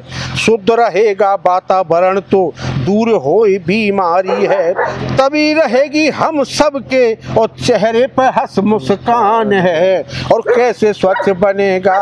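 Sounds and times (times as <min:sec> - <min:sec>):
man chanting verse: 0:00.0 - 0:12.0.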